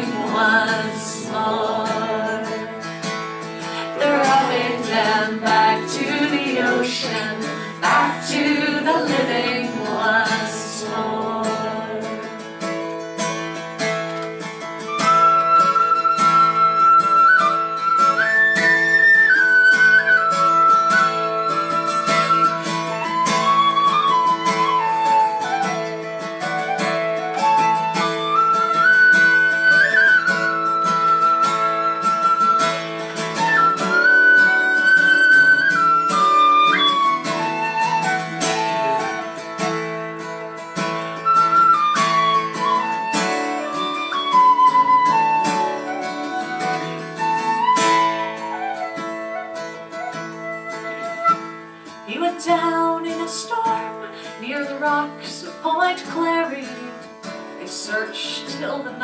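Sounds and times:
strummed acoustic guitar: 0.0 - 59.0
tin whistle melody: 14.8 - 51.6.

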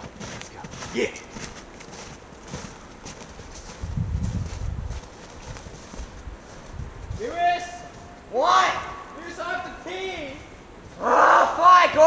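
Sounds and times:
footsteps crunching through snow: 0.0 - 12.0.

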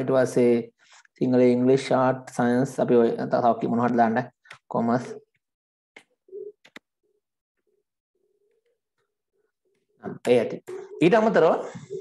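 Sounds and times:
computer keys clicking: 6.0 - 6.8
dove cooing: 10.7 - 12.0.

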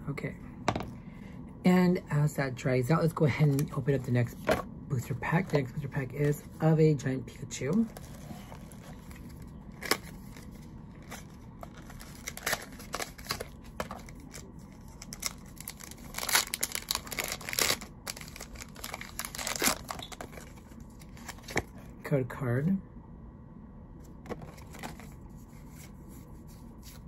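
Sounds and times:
foil wrapper crinkling and tearing: 7.7 - 21.7.

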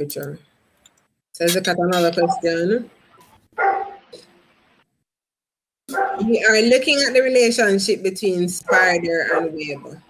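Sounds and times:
dog barking: 3.6 - 4.1, 5.9 - 6.3, 8.6 - 9.6.

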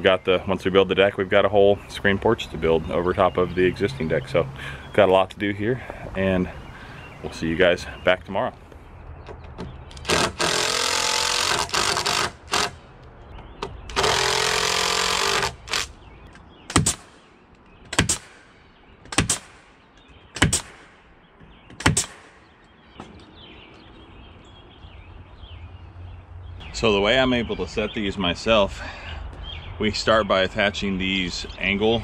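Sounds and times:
cordless drill driving screws: 9.9 - 12.8, 13.9 - 15.9
sharp knocks: 16.7 - 17.2, 17.8 - 19.7, 20.3 - 22.4.

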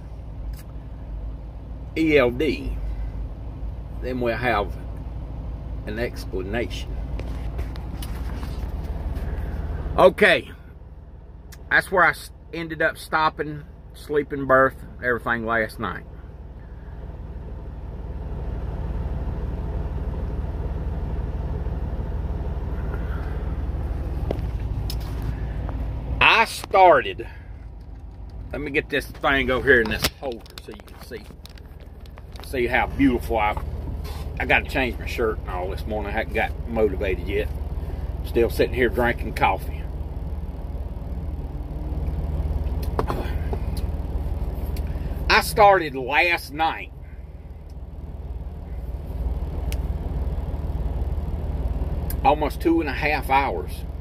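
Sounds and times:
diesel truck engine idling: 0.0 - 54.0.

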